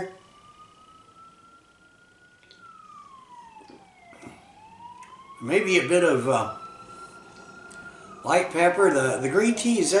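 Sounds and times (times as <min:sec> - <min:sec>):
faint siren wailing: 0:00.0 - 0:10.0.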